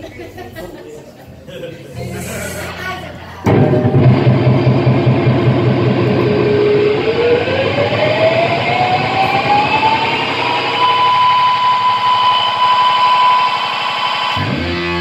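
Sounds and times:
electric guitar noise drone: 3.4s - 15.0s.

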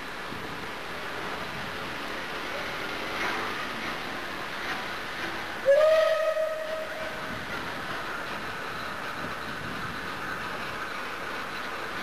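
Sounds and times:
train running noise: 0.0s - 12.0s
steam locomotive whistle: 5.6s - 7.2s.

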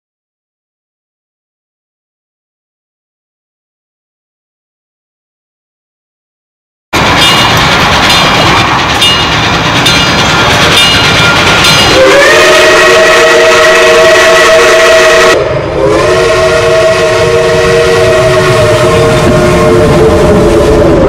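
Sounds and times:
approaching train noise: 7.0s - 21.0s
steam locomotive chime whistle: 10.7s - 21.0s.

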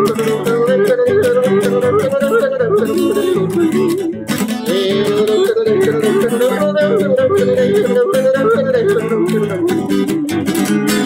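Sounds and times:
man yodeling: 0.0s - 10.7s
strummed acoustic guitar: 0.0s - 11.0s.

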